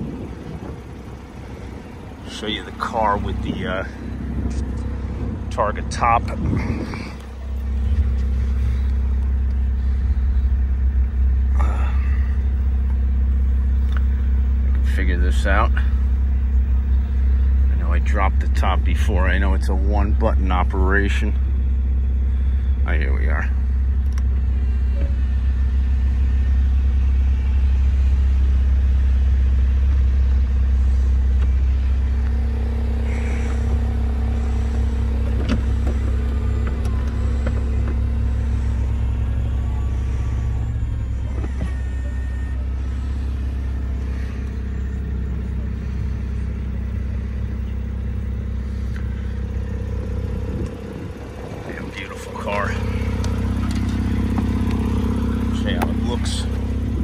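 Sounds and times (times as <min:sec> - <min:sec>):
car engine idling: 0:00.0 - 0:57.0
roof mechanism whirring and ticking: 0:00.0 - 0:57.0.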